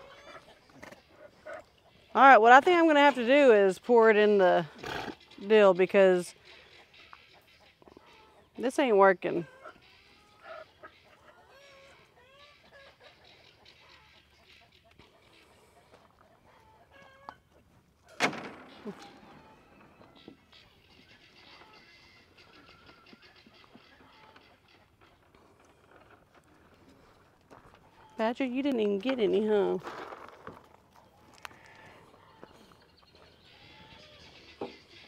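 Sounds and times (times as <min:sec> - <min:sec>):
chickens clucking: 0:00.0 - 0:03.4, 0:05.1 - 0:29.8, 0:30.6 - 0:35.0.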